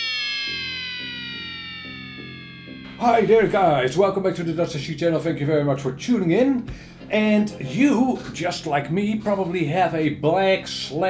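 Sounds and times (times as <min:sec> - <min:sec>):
synthesized tone gliding downward: 0:00.0 - 0:06.4
soft low notes: 0:00.1 - 0:11.0.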